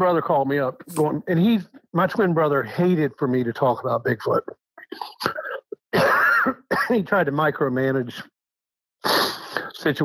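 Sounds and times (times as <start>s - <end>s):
man speaking: 0.0s - 5.8s, 6.7s - 8.3s, 9.4s - 10.0s
man clearing his throat: 4.8s - 7.0s.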